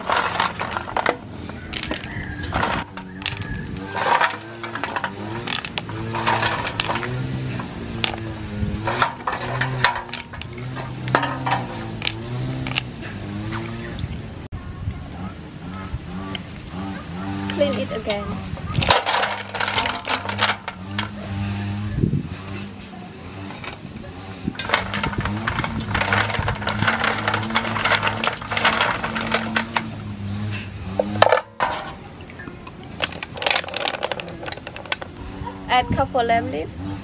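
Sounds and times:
shells clattering in metal basin: 0.0s - 12.9s, 17.5s - 21.6s, 23.4s - 23.9s, 24.5s - 30.2s, 30.9s - 35.2s.

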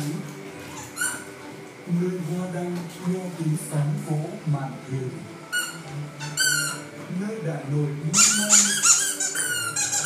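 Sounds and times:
song playing: 0.0s - 10.0s
squeaky dog toy: 0.7s - 1.3s, 5.5s - 6.9s, 8.1s - 10.0s.

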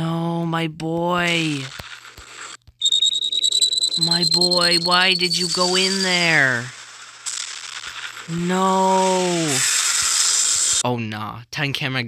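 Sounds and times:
high-pitched electronic whine: 1.9s - 10.8s.

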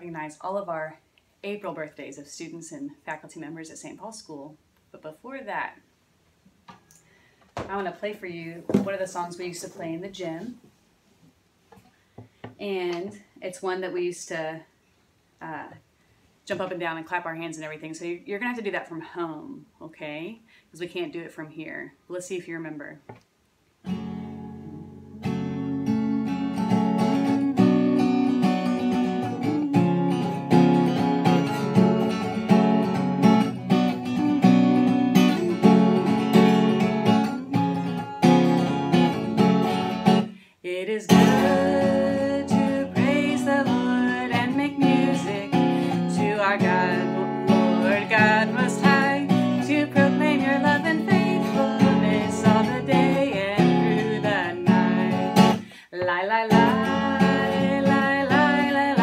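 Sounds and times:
acoustic guitar strumming: 23.8s - 40.4s, 41.1s - 55.7s, 56.4s - 59.0s
woman singing: 27.2s - 30.5s, 40.7s - 59.0s.

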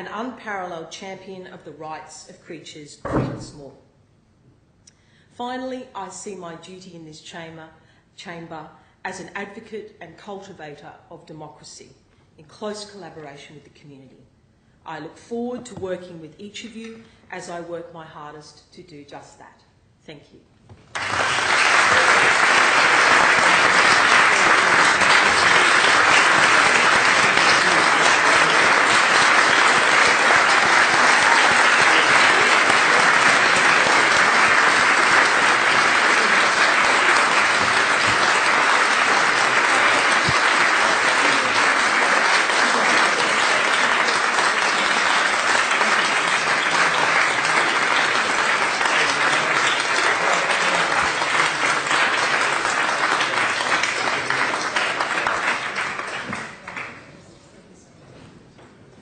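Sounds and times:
applause: 20.8s - 57.1s.

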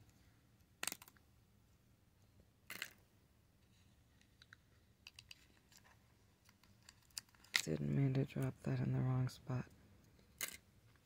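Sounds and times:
plastic nails clicking: 0.8s - 1.2s, 4.4s - 5.5s, 6.4s - 7.6s.

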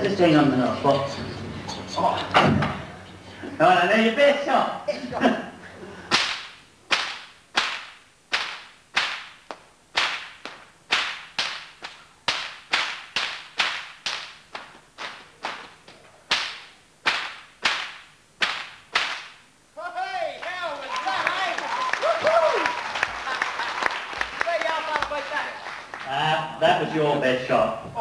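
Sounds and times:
stockwhip cracking: 6.1s - 19.4s.

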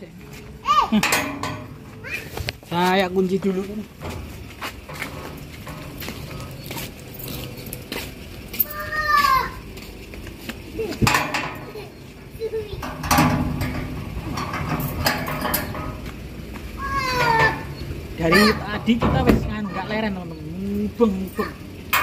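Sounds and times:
metal gate clicks and rattles: 0.8s - 2.1s, 3.4s - 7.8s, 11.0s - 11.9s, 12.6s - 16.2s, 16.8s - 20.2s, 21.3s - 22.0s.

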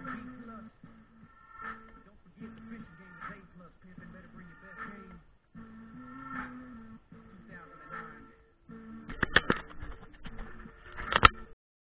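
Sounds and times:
steady hip-hop beat: 0.0s - 11.5s
sustained synth tones: 0.0s - 11.6s.

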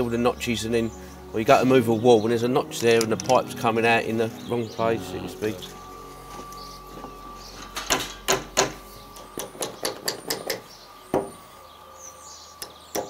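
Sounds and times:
hammer knocking on timber: 7.9s - 8.8s, 9.4s - 11.4s.

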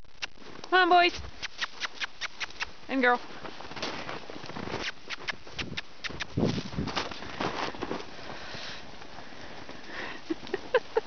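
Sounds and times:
horse hoofbeats in snow: 0.4s - 11.0s.

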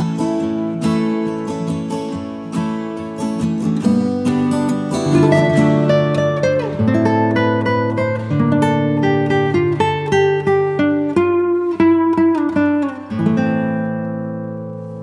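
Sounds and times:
acoustic guitar picking melody: 0.0s - 15.0s.

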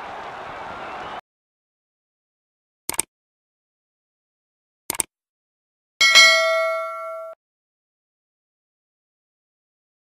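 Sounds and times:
notification bell chime: 6.0s - 7.4s.

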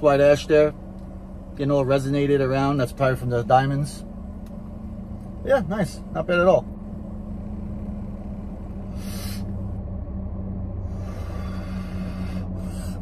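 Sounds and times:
car cabin hum: 0.0s - 13.0s
breathy hiss: 8.9s - 9.6s, 10.9s - 13.0s.

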